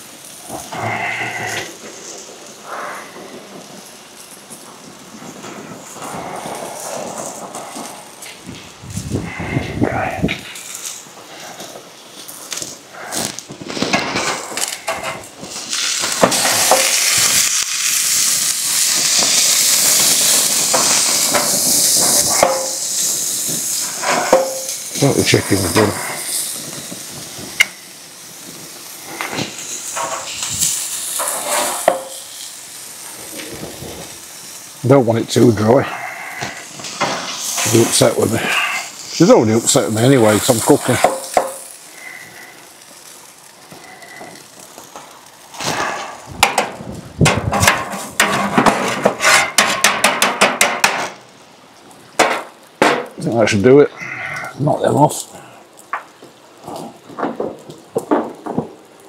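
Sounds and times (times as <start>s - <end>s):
meat sizzling on a grill: 0.0s - 59.0s.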